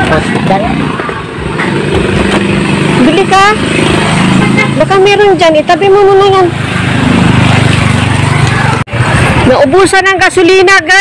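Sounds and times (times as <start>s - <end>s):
motorcycle engine running: 0.0s - 10.8s.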